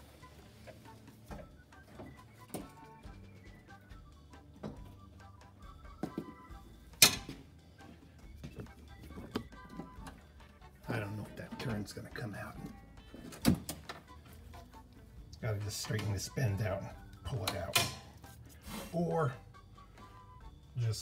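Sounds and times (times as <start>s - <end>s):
quiet background music: 0.0s - 21.0s
tools clicking and knocking: 7.0s - 7.4s, 17.4s - 18.2s.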